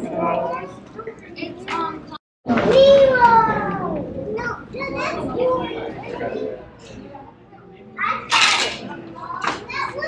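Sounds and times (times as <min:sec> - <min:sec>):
children talking: 0:00.0 - 0:10.0.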